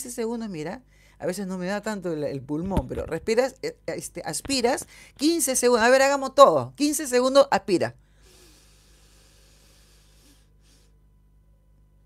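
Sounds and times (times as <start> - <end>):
deep breath through the nose: 8.1 - 11.1
short sniff: 8.2 - 11.0.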